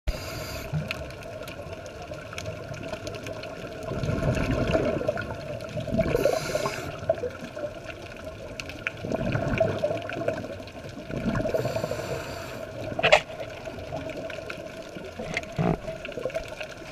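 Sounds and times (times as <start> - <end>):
steady underwater hiss: 0.1 - 16.9
exhaled bubbles from regulator: 3.8 - 7.8, 8.9 - 14.3.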